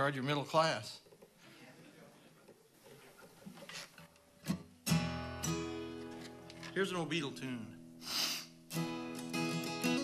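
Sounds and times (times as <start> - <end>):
acoustic guitar chord ringing: 4.5 - 6.5, 8.7 - 10.0.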